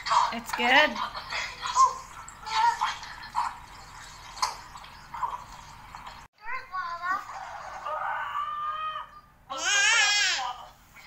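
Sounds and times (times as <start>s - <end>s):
young child's high-pitched voice: 6.4s - 10.3s.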